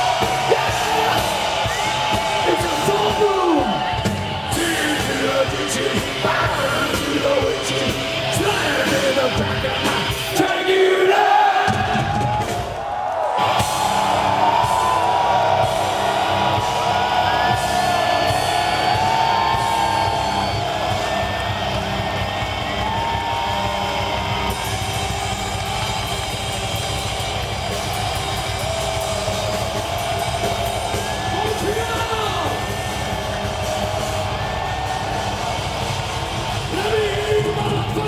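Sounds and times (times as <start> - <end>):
metal band playing: 0.0 - 12.7, 13.4 - 38.0
fans whooping and cheering: 0.0 - 38.0.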